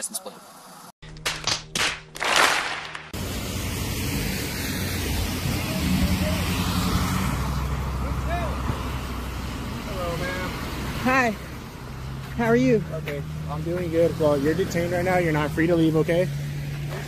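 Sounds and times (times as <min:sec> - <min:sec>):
crowd applause: 0:01.8 - 0:03.1
vehicles passing on wet road: 0:03.1 - 0:17.0.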